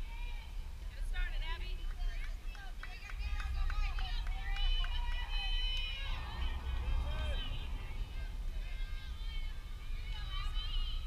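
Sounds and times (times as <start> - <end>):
steady low rumble: 0.0 - 11.0
distant children calling out: 2.3 - 11.0.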